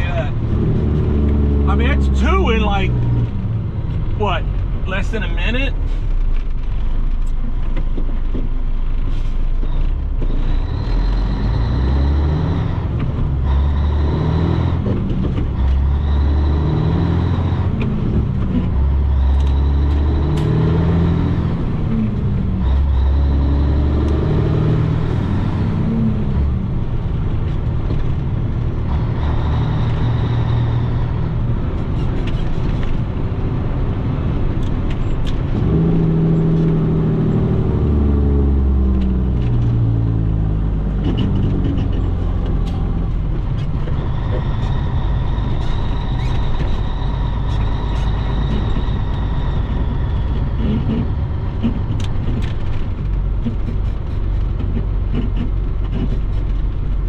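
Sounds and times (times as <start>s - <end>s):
diesel engine changing gears: 0.0s - 57.0s
high engine whine: 0.0s - 57.0s.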